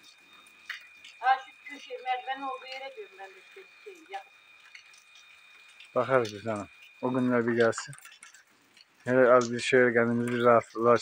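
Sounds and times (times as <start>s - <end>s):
faint high-pitched tone: 0.0s - 8.0s
person talking: 6.0s - 8.0s, 9.1s - 11.0s.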